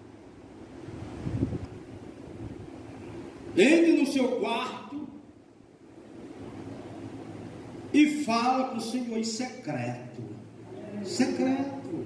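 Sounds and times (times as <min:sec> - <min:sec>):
low rumble of air on microphone: 0:00.0 - 0:03.6
microphone handling noise: 0:00.8 - 0:02.8.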